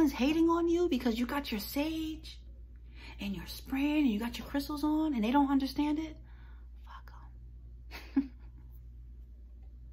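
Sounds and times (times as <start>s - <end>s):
woman speaking: 0.0s - 2.5s, 3.1s - 6.2s
woman whispering: 6.8s - 7.5s.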